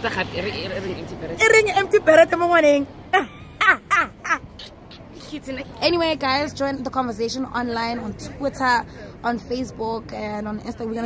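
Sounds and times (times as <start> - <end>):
woman laughing: 3.1 - 5.0.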